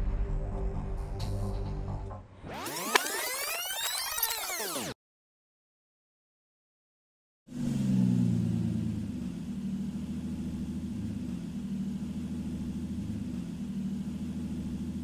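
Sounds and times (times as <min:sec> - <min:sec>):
car engine idling: 0:07.5 - 0:15.0.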